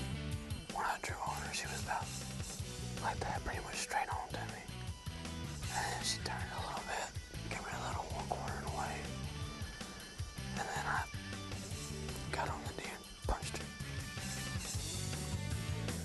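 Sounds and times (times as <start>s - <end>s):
background music with bass line: 0.0s - 0.8s, 1.4s - 16.0s
people whispering: 0.8s - 2.1s, 3.0s - 4.7s, 5.6s - 9.8s, 10.5s - 11.1s, 12.2s - 13.7s.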